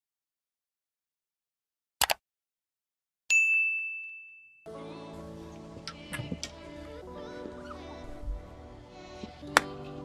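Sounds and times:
notification bell ding: 0:03.3 - 0:04.6.

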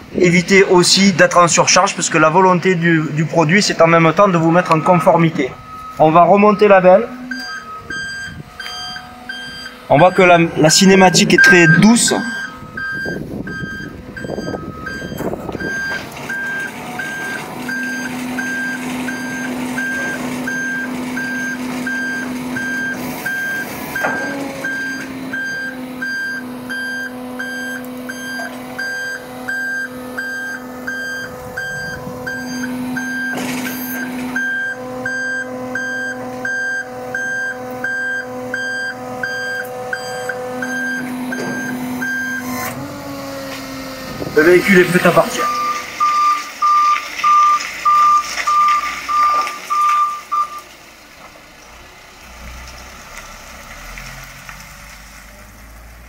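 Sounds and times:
hydraulic pump hum: 0:03.3 - 0:46.8
warning beeper short beeps: 0:03.9 - 0:42.8, 0:44.4 - 0:50.6.

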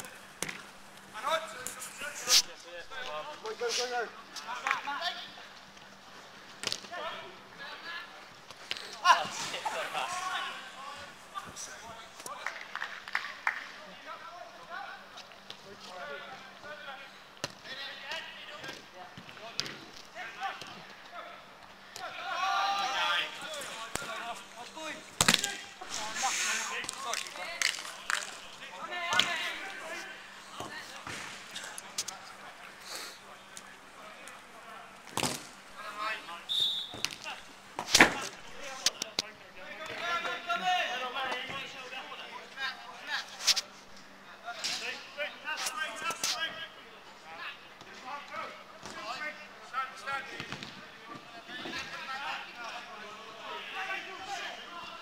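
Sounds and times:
players shouting: 0:22.0 - 0:30.3.

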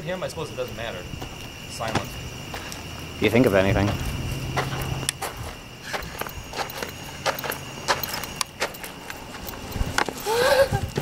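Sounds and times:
light footsteps on pavement: 0:00.0 - 0:10.3.

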